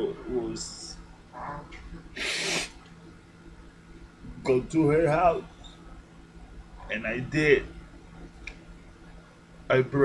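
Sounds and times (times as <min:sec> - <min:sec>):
man sniffing through nose: 0:02.2 - 0:02.8.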